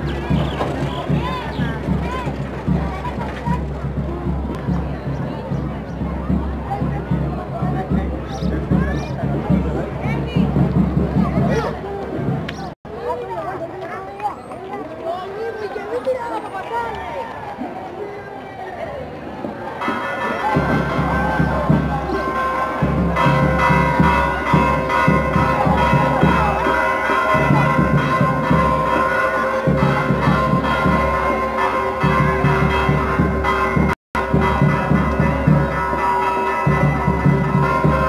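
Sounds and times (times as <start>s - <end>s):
low crowd rumble: 0.0s - 38.0s
church bells pealing: 19.8s - 38.0s.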